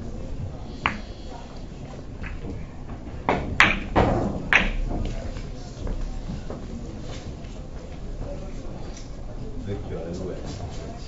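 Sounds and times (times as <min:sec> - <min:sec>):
cue striking ball: 0:00.8 - 0:01.2, 0:03.2 - 0:05.2
billiard balls clicking and knocking: 0:00.8 - 0:06.7.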